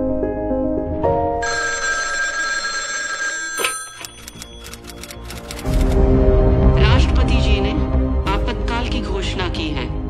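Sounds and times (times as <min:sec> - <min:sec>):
background music: 0:00.0 - 0:10.0
telephone bell ringing: 0:01.4 - 0:05.5
telephone click: 0:03.6 - 0:05.9.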